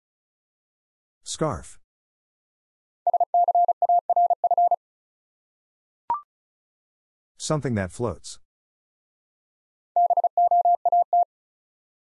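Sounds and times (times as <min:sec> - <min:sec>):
morse code tone: 0:03.1 - 0:04.8, 0:10.0 - 0:11.3.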